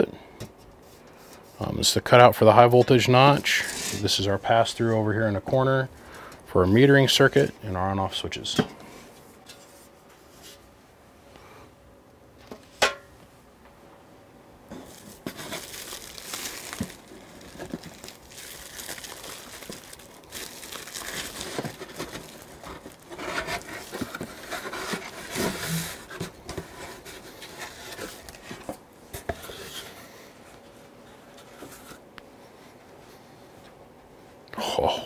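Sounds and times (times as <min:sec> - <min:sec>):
bubble wrap crinkling: 0:14.7 - 0:28.8.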